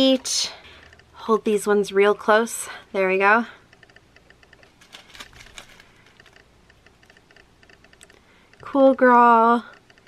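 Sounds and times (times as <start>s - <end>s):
plastic zip bags crinkling: 4.8s - 6.4s.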